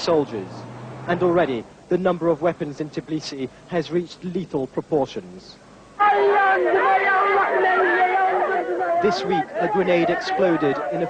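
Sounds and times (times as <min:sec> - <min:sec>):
people chattering: 0:06.0 - 0:11.0.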